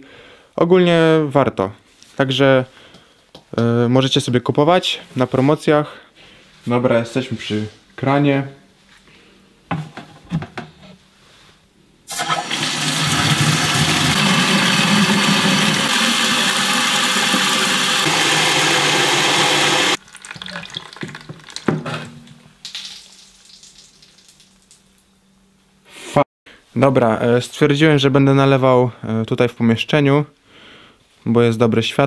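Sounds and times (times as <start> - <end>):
water running into watering can: 12.1 - 21.8, 22.6 - 24.9.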